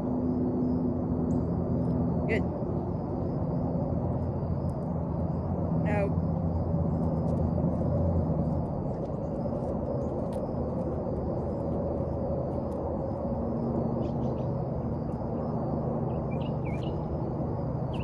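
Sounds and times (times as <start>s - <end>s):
low hum and rumble: 0.0s - 18.0s
bird chirping: 16.1s - 17.2s.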